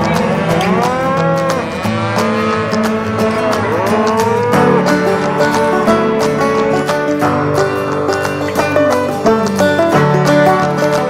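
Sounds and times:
cow mooing: 0.0 - 8.1.

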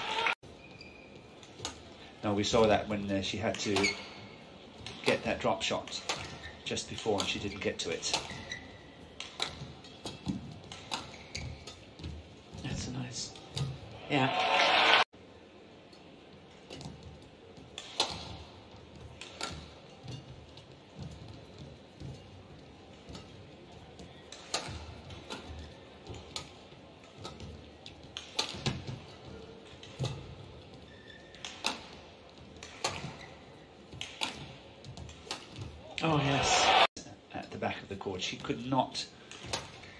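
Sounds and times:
racket hitting shuttlecock: 8.0 - 12.2, 17.8 - 18.4, 19.0 - 20.3, 24.2 - 29.0, 31.4 - 32.0, 32.6 - 33.3, 33.9 - 35.7.

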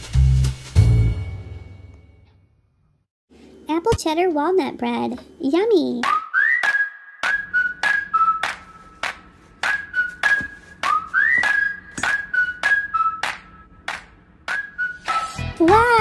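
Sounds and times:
whistled melody: 6.0 - 13.8, 14.4 - 15.9.

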